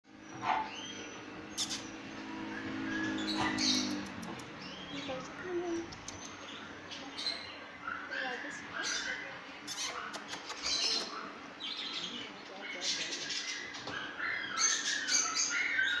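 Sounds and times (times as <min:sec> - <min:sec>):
cage birds chirping and squawking: 0:00.1 - 0:16.0
small animals squeaking and whining: 0:00.1 - 0:16.0
steady low hum: 0:00.1 - 0:16.0.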